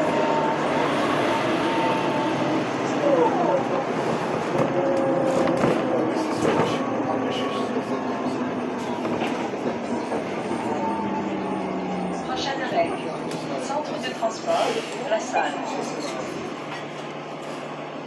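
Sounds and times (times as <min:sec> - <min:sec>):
bus engine whining: 0:00.0 - 0:18.0.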